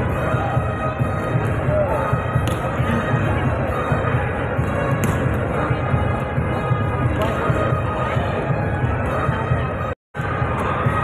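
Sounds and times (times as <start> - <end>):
volleyballs thumping on court: 2.4 - 2.8, 4.8 - 5.5, 7.0 - 7.6.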